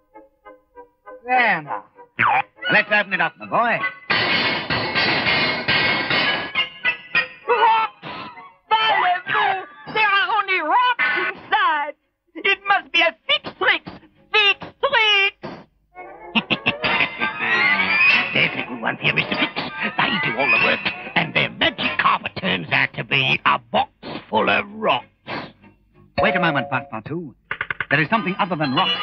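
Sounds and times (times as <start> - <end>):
cartoon soundtrack music: 0.1 - 4.2, 16.0 - 22.0, 26.2 - 27.2.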